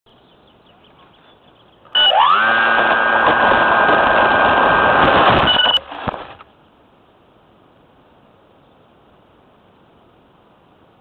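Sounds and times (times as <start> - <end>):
small electric motor whining: 2.0 - 5.0.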